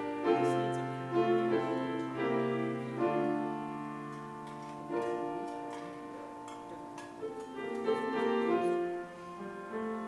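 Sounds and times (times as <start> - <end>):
keyboard playing slow chords: 0.0 - 10.0.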